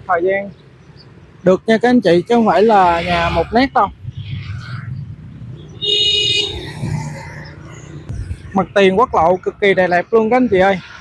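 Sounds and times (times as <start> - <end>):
traffic engine rumble: 0.0 - 11.0
vehicle horn: 5.8 - 6.7.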